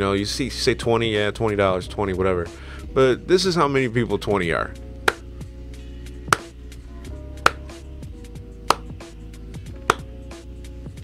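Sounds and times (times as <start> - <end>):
soft music with held notes: 0.0 - 11.0
hand claps: 6.3 - 6.5, 7.4 - 7.8, 8.7 - 9.0, 9.8 - 10.1.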